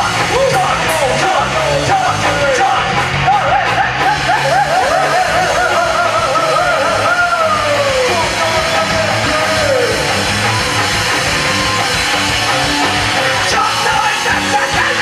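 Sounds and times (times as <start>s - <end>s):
live rock band playing: 0.0s - 15.0s
swooping lead guitar line: 0.0s - 15.0s.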